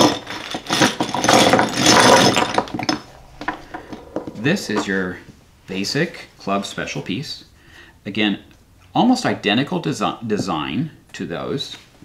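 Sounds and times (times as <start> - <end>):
plastic chess pieces clattering: 0.0 - 4.9.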